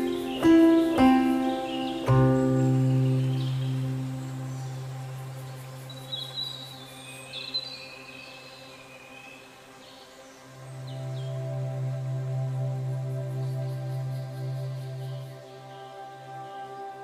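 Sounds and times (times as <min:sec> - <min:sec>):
birds chirping: 0:00.0 - 0:17.0
calm ambient music: 0:00.0 - 0:17.0.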